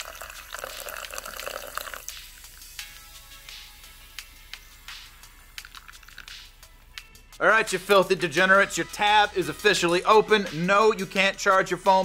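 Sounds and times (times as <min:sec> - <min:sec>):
soda pouring into glass of ice: 0:00.0 - 0:02.8, 0:05.4 - 0:06.5
fizz crackling: 0:00.0 - 0:06.7.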